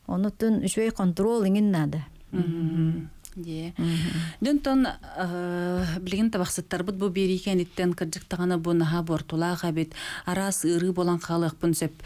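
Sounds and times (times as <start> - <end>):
woman speaking: 0.0 - 12.0
woman humming one steady pitch: 2.3 - 3.2.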